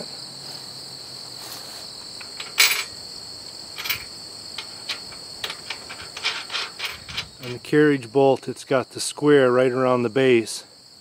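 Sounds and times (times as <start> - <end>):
metallic clanks and knocks: 2.2 - 3.0, 3.8 - 7.6.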